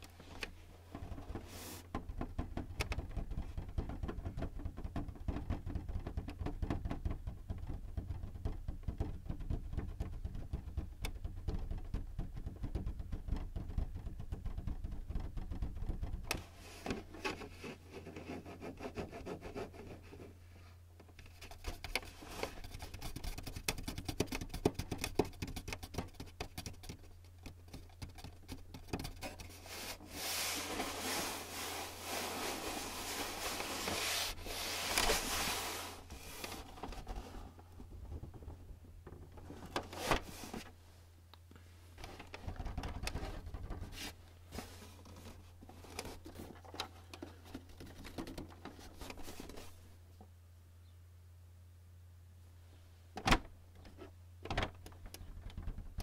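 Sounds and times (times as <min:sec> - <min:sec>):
scratching on plastic casing: 0:00.0 - 0:20.3, 0:21.1 - 0:40.7, 0:42.0 - 0:49.8
fingertips tapping on plastic: 0:00.9 - 0:17.4, 0:21.1 - 0:29.6.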